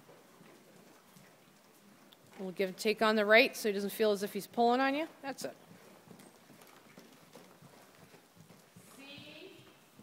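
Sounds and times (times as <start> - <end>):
faint horse hoofbeats: 0.0 - 10.0.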